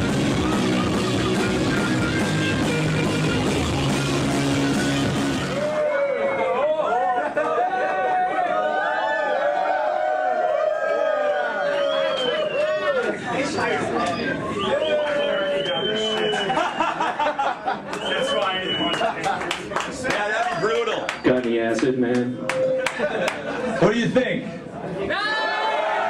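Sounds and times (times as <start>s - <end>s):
live metal band playing: 0.0s - 5.8s
crowd cheering and shouting: 0.0s - 17.2s, 24.9s - 26.0s.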